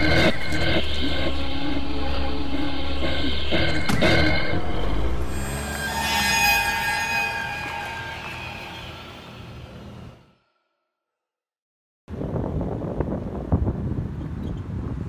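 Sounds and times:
low rumble: 0:00.0 - 0:10.2
sharp hit: 0:00.0 - 0:10.4
high ringing tones: 0:00.0 - 0:10.6.

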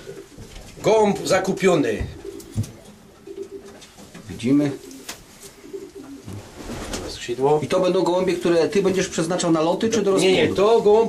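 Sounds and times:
pigeons cooing: 0:00.0 - 0:07.2.

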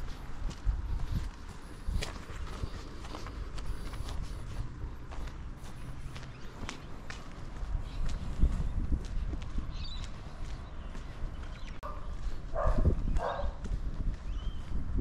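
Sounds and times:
footsteps on concrete: 0:00.0 - 0:15.0
dog barking: 0:11.8 - 0:13.6.

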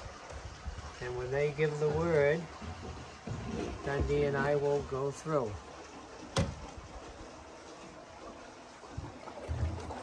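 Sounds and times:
water streaming and swirling: 0:00.0 - 0:10.0.

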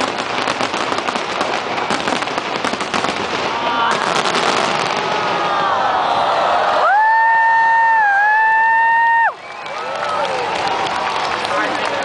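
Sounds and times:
spectator high-pitched cheer: 0:05.4 - 0:11.1.

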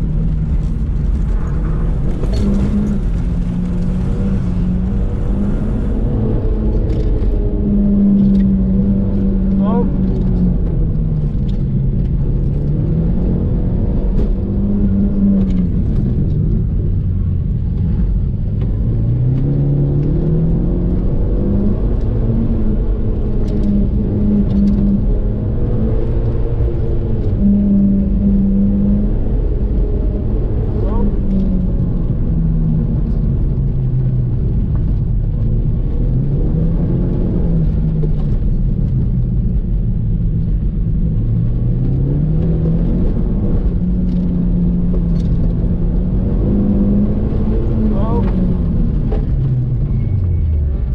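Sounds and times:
car engine revving from inside cabin: 0:17.8 - 0:34.7, 0:35.5 - 0:39.7, 0:40.4 - 0:50.9.

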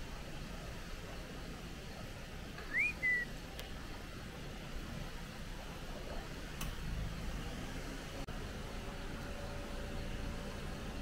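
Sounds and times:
two-note whistle: 0:02.7 - 0:03.3.

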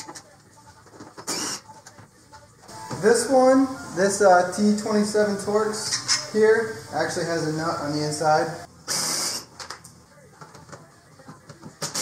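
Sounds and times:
handling noises: 0:00.0 - 0:03.5.

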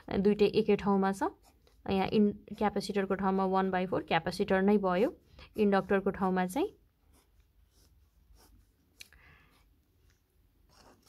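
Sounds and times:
pen scratching on paper: 0:00.6 - 0:02.1, 0:04.7 - 0:09.7, 0:10.6 - 0:11.0.

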